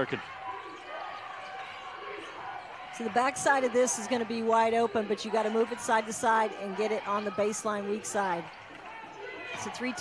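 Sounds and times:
murmur of gym crowd: 0:00.0 - 0:10.0.

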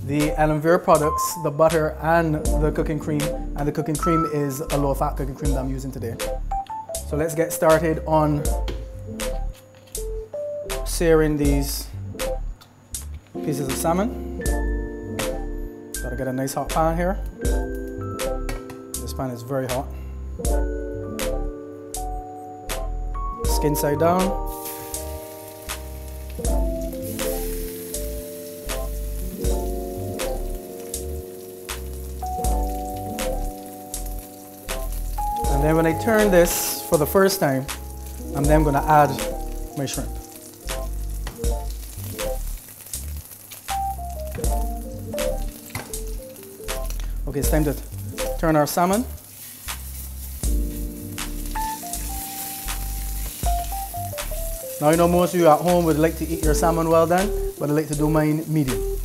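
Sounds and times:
background music with bass: 0:00.0 - 0:59.0
oil sizzling with pops: 0:24.2 - 0:59.0.

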